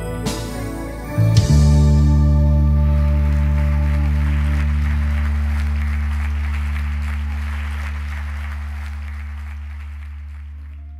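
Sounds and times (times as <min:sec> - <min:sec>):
band holding low chord: 0:00.0 - 0:09.9
congregation applauding: 0:02.5 - 0:10.9.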